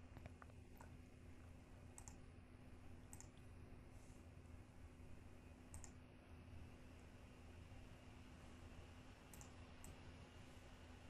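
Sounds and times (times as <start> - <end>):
faint low hum: 0.0 - 11.0
computer mouse clicks: 0.1 - 1.0, 1.9 - 2.3, 3.1 - 3.5, 5.7 - 6.0, 9.3 - 10.0.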